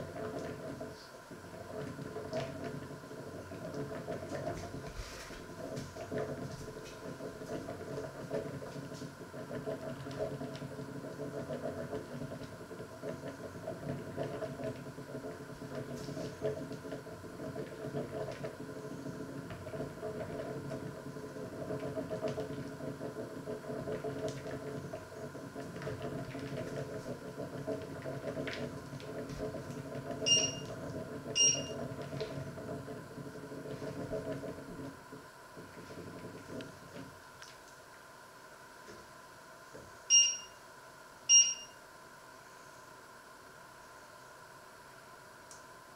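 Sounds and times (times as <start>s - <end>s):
rumbling hum of pots heating: 0.0s - 45.9s
short high electronic beeps: 30.3s - 30.6s, 40.1s - 40.6s, 41.3s - 41.8s.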